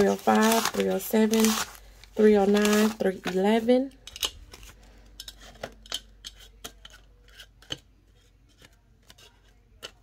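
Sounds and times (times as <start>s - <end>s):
banknotes snapping and rustling: 0.0s - 3.5s.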